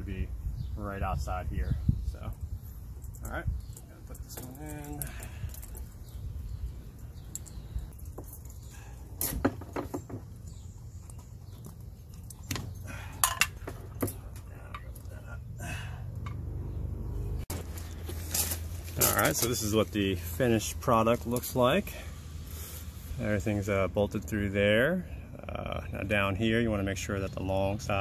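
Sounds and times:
metal clinks and knocks: 7.2s - 10.3s, 11.0s - 15.1s.

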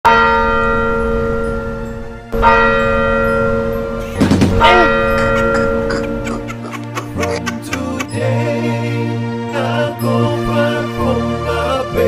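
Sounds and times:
bell ringing: 0.1s - 8.4s.

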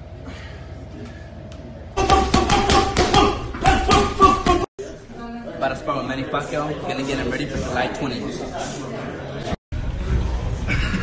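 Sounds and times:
boxing gloves punching heavy bag: 2.0s - 4.6s.

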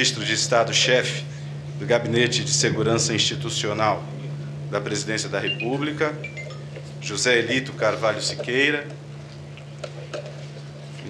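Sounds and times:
low microphone hum: 0.0s - 11.0s.

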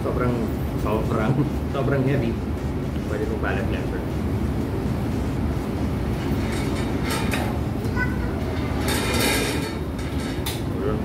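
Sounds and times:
low rumbling restaurant noise: 0.0s - 11.0s.

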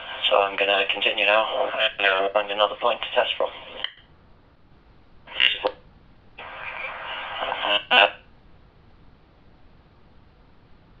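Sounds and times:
garbled radio voice: 0.0s - 3.9s, 5.3s - 5.8s, 6.4s - 8.2s.

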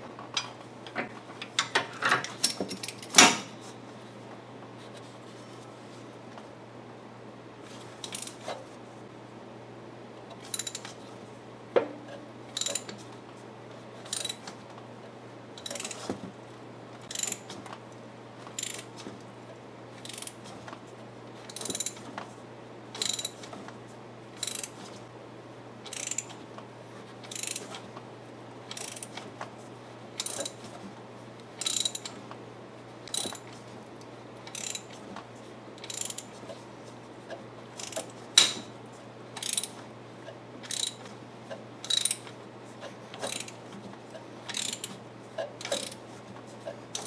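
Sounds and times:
ratchet wrench clicking: 10.5s - 10.9s, 12.6s - 13.0s, 14.1s - 14.4s, 15.6s - 16.0s, 17.1s - 17.4s, 18.6s - 18.9s, 20.0s - 20.4s, 21.5s - 22.0s, 23.0s - 23.4s, 24.4s - 24.7s, 25.9s - 26.3s, 27.3s - 27.6s, 28.7s - 29.1s, 30.2s - 30.6s, 31.6s - 32.1s, 33.1s - 33.5s, 34.5s - 34.9s, 35.8s - 36.3s, 37.8s - 38.6s, 39.4s - 39.8s, 40.7s - 41.0s, 41.8s - 42.2s, 43.2s - 43.6s, 44.5s - 44.9s, 45.6s - 46.0s.

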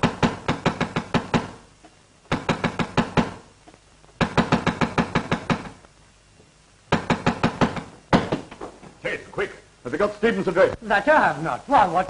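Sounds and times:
rapid knocking on a door: 0.0s - 1.6s, 2.3s - 3.4s, 4.2s - 5.8s, 6.9s - 8.5s.

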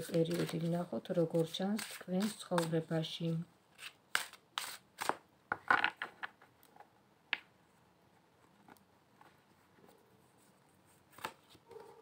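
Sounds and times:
cards being handled: 0.0s - 0.8s, 11.0s - 11.6s.

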